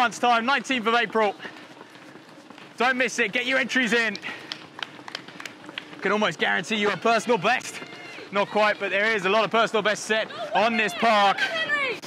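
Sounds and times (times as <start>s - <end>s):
running footsteps slapping: 0.0s - 12.0s.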